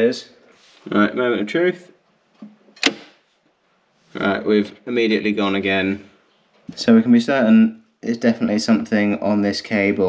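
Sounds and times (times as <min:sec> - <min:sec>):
circuit breaker click: 0:02.8 - 0:03.2
circuit breaker snapping off: 0:02.8 - 0:03.2.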